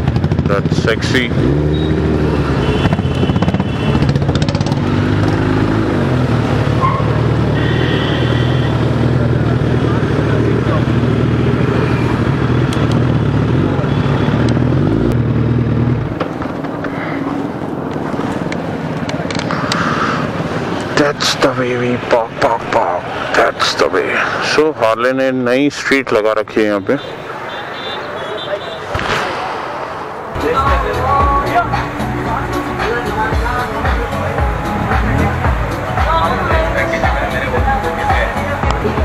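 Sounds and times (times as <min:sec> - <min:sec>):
motorcycle engine running: 0:00.0 - 0:20.9.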